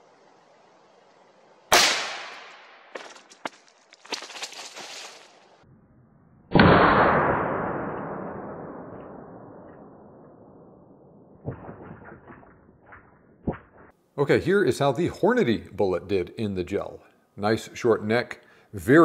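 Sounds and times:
rifle shot: 1.7s - 2.8s, 6.5s - 13.0s.

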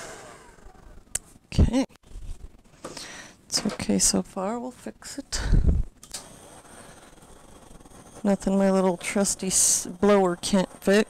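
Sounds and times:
electric blower running: 0.0s - 1.1s.

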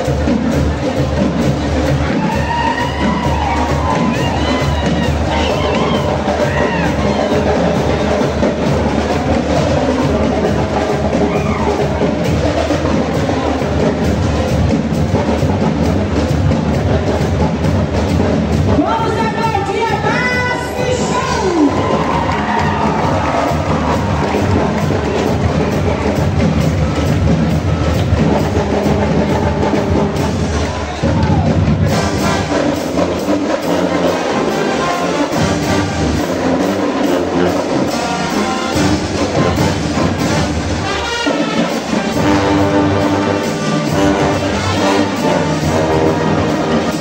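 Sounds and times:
brass marching band with drums: 0.0s - 47.0s.

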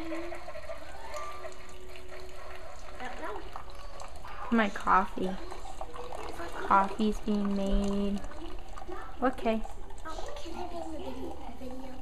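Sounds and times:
coffee maker hissing: 0.0s - 12.0s.

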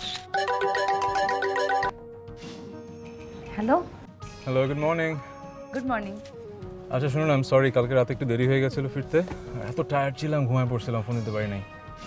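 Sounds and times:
phone ringtone melody: 0.3s - 2.0s.

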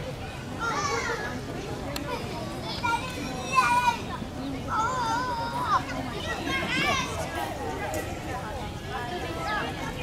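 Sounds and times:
girls chatting: 0.5s - 10.0s.

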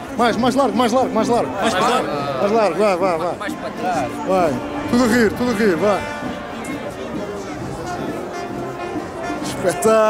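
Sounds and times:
crowd chatter: 0.0s - 10.0s
marching band music: 0.0s - 10.0s.

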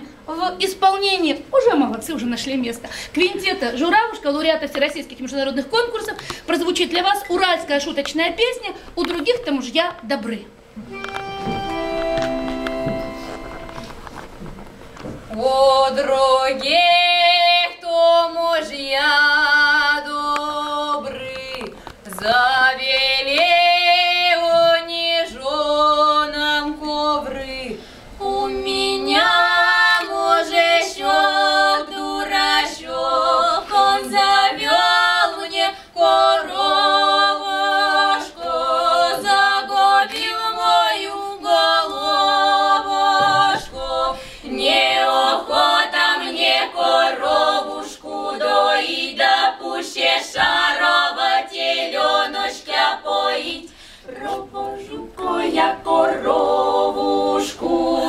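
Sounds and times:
women singing a cappella harmony: 15.3s - 58.0s.

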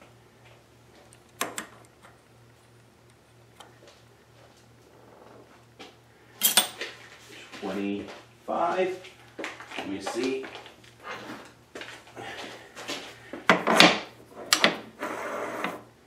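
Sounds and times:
faint steady low hum: 0.0s - 16.0s.

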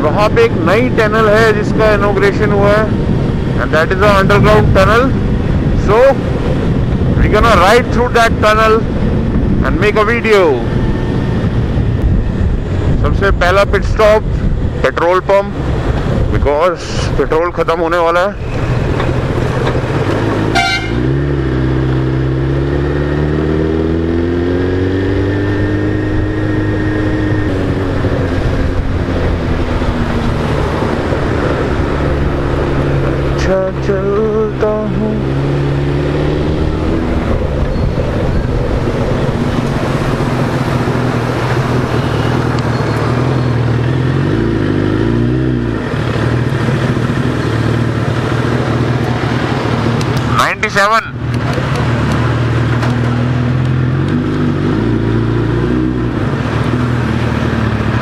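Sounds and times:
wind noise: 0.0s - 50.6s
road noise: 0.0s - 58.0s
motorcycle engine running: 18.4s - 50.5s.

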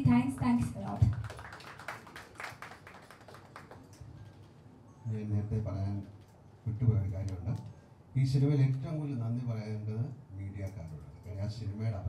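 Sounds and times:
small group clapping: 0.4s - 4.6s.

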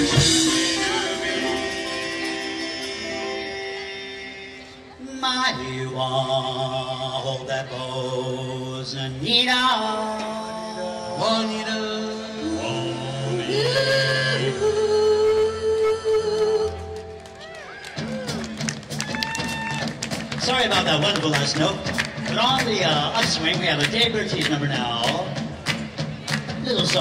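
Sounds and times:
backing band: 0.0s - 6.9s, 9.1s - 27.0s
vocal group singing in harmony: 0.0s - 16.8s.

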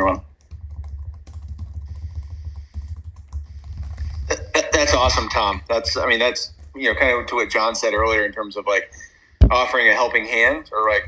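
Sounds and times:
person speaking: 0.0s - 0.4s, 3.5s - 11.0s
typing on computer keyboard: 0.0s - 8.4s, 10.4s - 11.0s
steady low hum: 0.0s - 11.0s.

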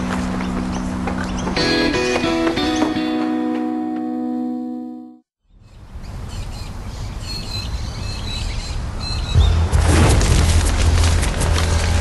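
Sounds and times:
birds chirping: 0.0s - 3.5s
bushfire roaring and crackling: 9.7s - 12.0s.

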